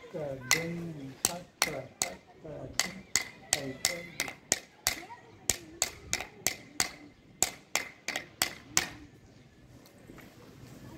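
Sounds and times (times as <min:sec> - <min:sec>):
wooden stick knocking on block: 0:00.4 - 0:09.0.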